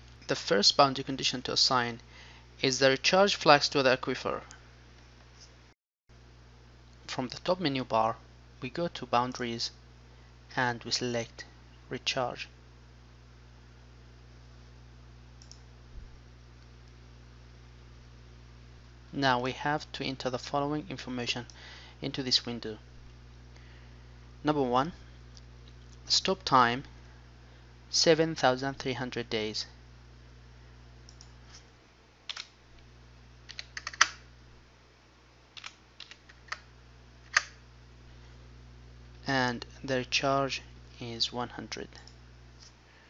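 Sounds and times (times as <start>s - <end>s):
steady low hum and hiss: 0.0s - 43.0s
computer mouse clicking: 32.3s - 32.5s, 33.5s - 34.2s, 35.6s - 36.6s.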